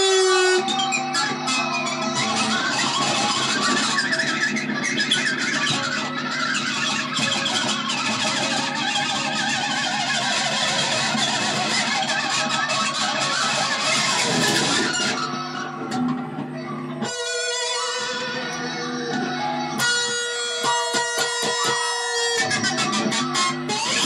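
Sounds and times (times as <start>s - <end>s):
electric guitar strummed: 0.0s - 24.0s.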